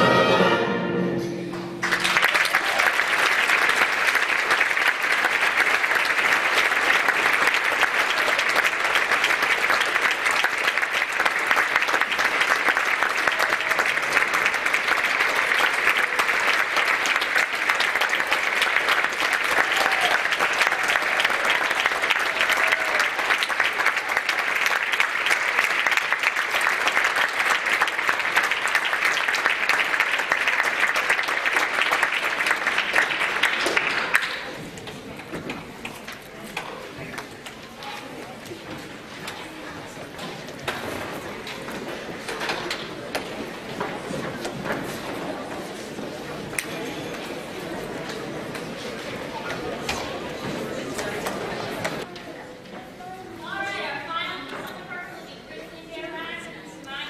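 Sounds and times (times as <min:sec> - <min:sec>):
audience applauding: 0:01.6 - 0:35.1.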